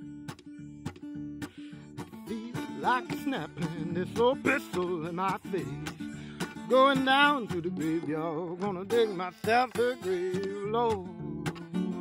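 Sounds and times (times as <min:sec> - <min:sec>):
solo blues guitar riff: 0:00.0 - 0:12.0.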